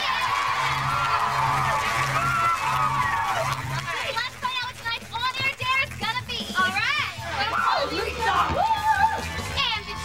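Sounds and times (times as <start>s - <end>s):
children cheering and shrieking: 7.4s - 10.0s.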